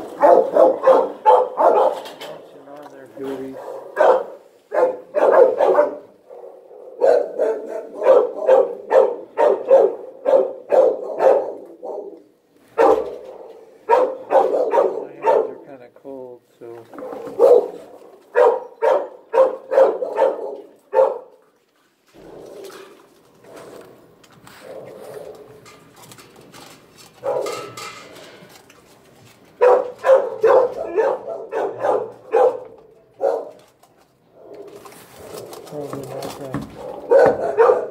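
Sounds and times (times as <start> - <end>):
dog barking: 0.1 - 2.4, 3.5 - 15.6, 17.0 - 21.4, 24.6 - 25.5, 27.2 - 27.7, 29.6 - 33.6, 36.7 - 37.9.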